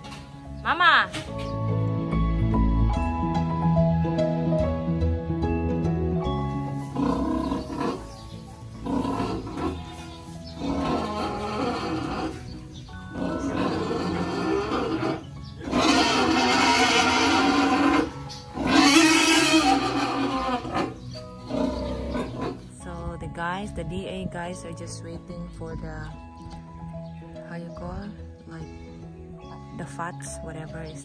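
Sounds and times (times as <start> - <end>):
pig squealing: 7.0 - 8.1, 8.8 - 10.0, 10.6 - 12.5, 13.1 - 22.6.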